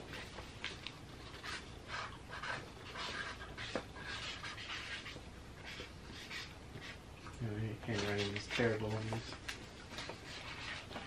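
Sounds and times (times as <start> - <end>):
marker scratching on paper: 1.2 - 7.0, 10.0 - 11.0.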